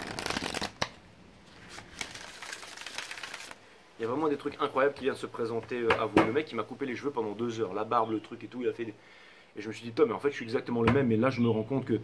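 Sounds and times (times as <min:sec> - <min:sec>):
cards being shuffled: 0:00.0 - 0:04.2.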